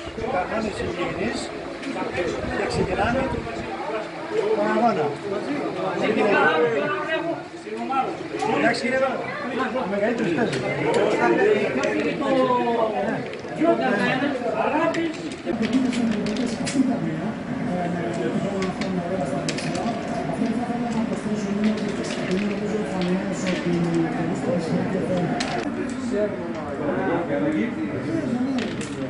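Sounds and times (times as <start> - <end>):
background chatter of voices: 0.0 - 29.0.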